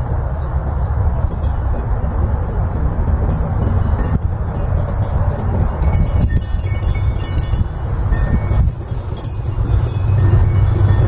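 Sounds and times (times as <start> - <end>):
wind chimes ringing: 0.7 - 11.0.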